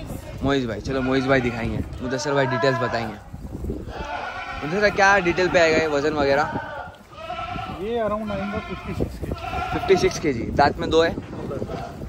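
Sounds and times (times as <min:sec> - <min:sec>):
goat bleating: 0:00.1 - 0:03.0, 0:03.9 - 0:10.3.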